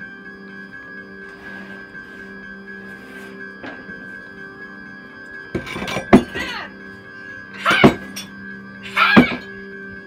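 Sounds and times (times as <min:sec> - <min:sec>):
eerie music drone: 0:00.0 - 0:10.0.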